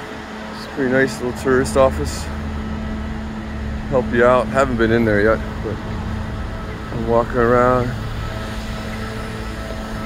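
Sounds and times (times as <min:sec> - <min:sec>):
engine humming: 0:00.0 - 0:10.0
street noise: 0:00.0 - 0:10.0.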